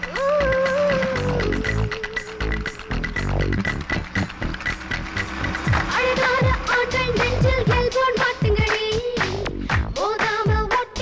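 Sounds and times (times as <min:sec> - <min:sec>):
electronic film song music: 0:00.0 - 0:11.0.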